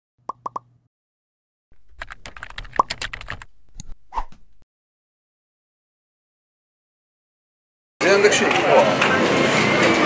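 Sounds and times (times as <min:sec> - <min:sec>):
keyboard typing: 0:01.8 - 0:04.0.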